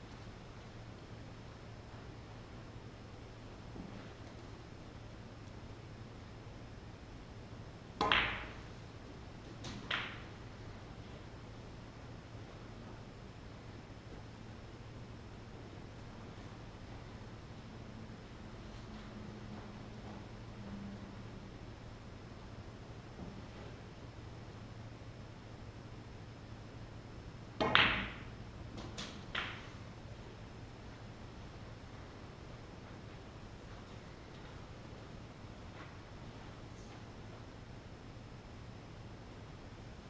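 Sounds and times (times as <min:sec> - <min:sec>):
cue tip striking ball: 0:08.0 - 0:08.6, 0:09.7 - 0:10.3, 0:27.6 - 0:29.8
snooker balls clicking: 0:08.0 - 0:08.7, 0:09.4 - 0:10.4, 0:27.6 - 0:29.8.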